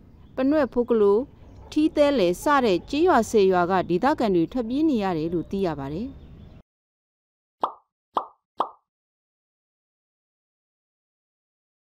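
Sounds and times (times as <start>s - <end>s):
pop sound effects: 7.6s - 8.8s.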